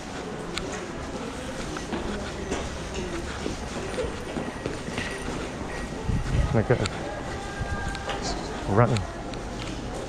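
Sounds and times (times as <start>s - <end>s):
faint distant voices: 0.0s - 10.0s
footsteps: 0.0s - 10.0s.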